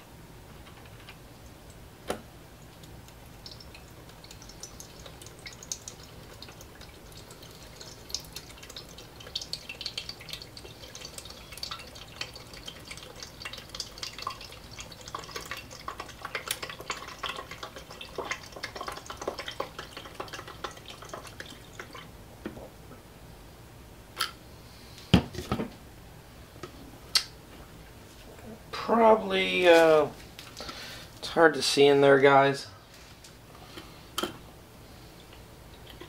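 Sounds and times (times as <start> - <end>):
gurgles and drips: 2.6 - 22.1.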